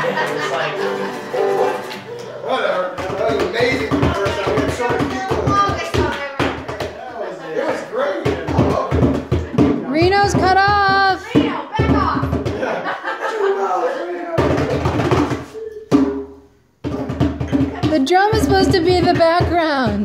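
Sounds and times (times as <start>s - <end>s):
people laughing: 0.0s - 2.9s, 12.5s - 15.9s
excited voices: 0.0s - 3.0s, 9.9s - 14.9s
hand clapping: 3.0s - 7.0s.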